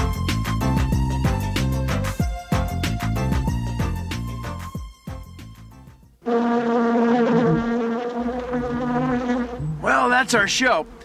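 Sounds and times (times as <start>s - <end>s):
flying insect buzzing: 6.2s - 9.9s.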